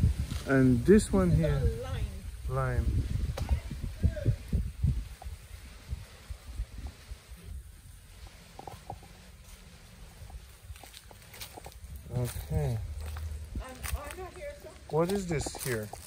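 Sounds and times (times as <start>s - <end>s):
low microphone rumble: 0.0s - 14.9s.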